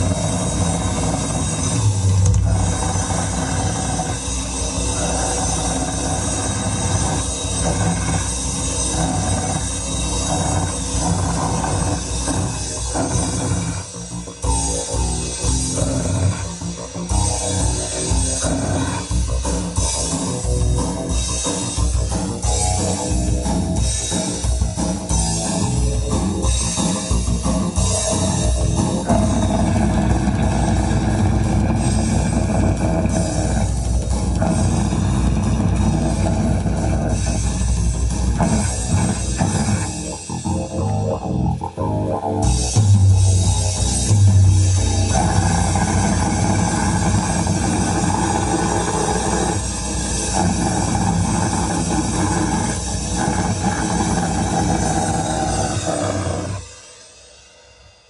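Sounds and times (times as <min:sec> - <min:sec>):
live rock band playing: 0:14.0 - 0:48.0.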